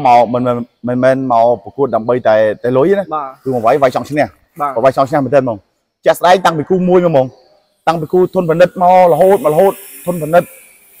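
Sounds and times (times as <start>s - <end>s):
man talking: 0.0s - 10.6s
faint high-pitched hiss: 0.0s - 11.0s.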